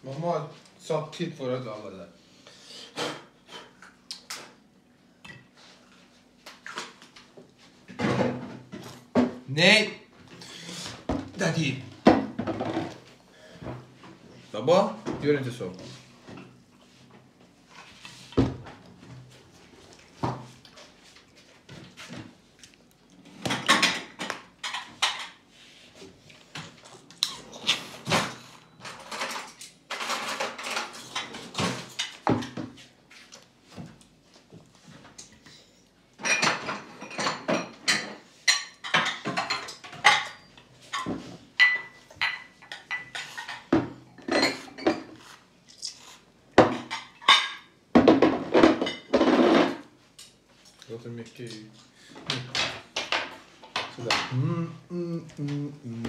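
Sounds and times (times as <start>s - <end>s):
dishes knocking on trays: 48.0s - 49.8s.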